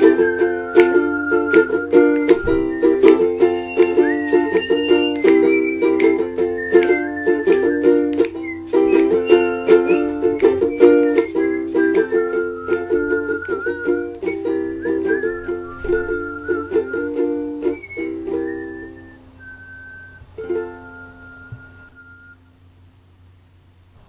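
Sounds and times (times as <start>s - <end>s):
ukulele strumming: 0.0s - 22.4s
person whistling a melody: 0.0s - 22.5s.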